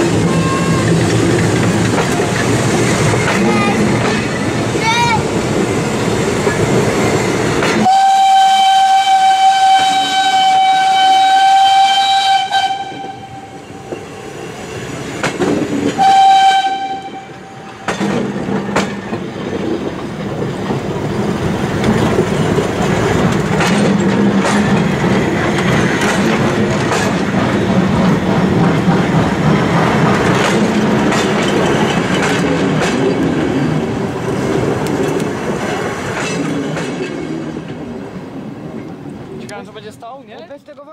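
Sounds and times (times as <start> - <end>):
train wheels clicking over rail joints: 0.0 - 13.2, 13.8 - 40.8
train whistle blast: 0.2 - 0.9, 7.8 - 14.0, 16.0 - 17.7.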